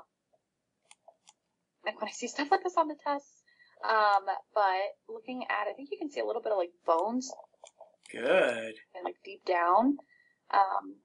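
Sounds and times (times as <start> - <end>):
person talking: 1.9 - 3.2, 3.8 - 7.4, 8.1 - 10.0.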